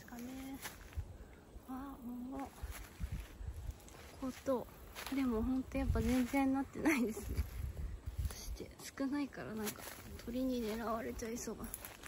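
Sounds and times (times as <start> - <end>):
woman speaking: 0.0 - 0.7, 1.6 - 2.6, 4.1 - 7.5, 8.3 - 11.8.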